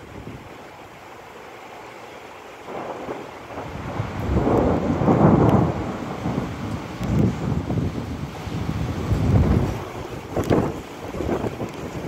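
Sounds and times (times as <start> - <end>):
thunder rumbling: 2.6 - 12.0
wind buffeting microphone: 2.7 - 12.0.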